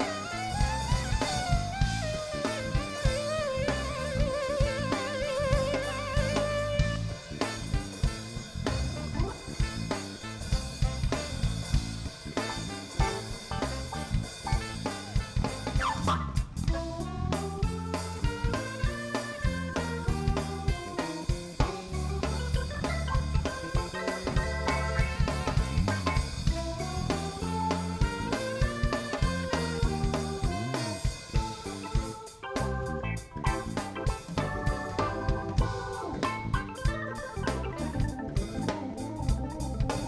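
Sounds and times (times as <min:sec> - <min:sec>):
jazz band playing: 0:00.0 - 0:40.0.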